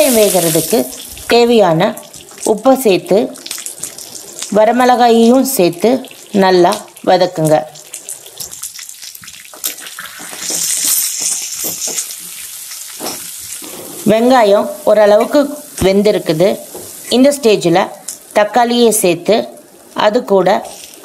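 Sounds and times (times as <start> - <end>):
onions sizzling in hot oil: 0.0 - 21.0
person speaking: 4.5 - 7.8.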